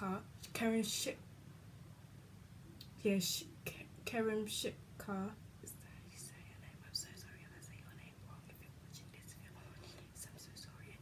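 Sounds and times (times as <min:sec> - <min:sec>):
woman whispering faintly: 0:05.7 - 0:11.0.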